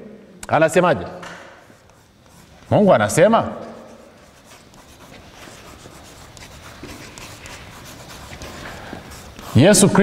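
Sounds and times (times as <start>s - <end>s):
chalk scratching on blackboard: 1.6s - 10.0s.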